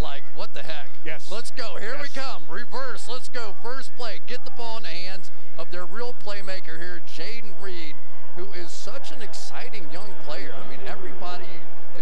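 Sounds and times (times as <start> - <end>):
man talking excitedly: 0.0 - 11.6.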